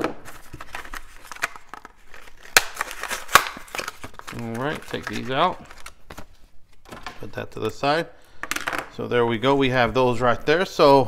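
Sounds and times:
plastic pack snapping: 0.0s - 6.2s
plastic crinkling and crackling: 0.3s - 7.1s.

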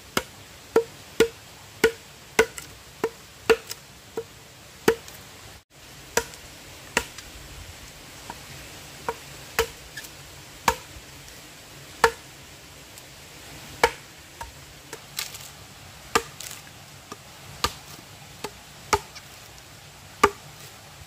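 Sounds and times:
metal blade chopping wood: 0.2s - 4.3s, 6.2s - 6.4s, 9.1s - 10.9s, 12.0s - 12.2s, 13.8s - 14.1s, 14.9s - 15.5s, 16.1s - 19.3s, 20.2s - 20.5s.

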